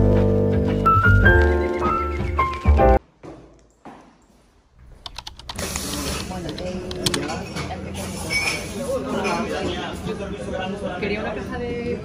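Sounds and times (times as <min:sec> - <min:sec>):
busy indoor background noise: 0:03.0 - 0:12.0.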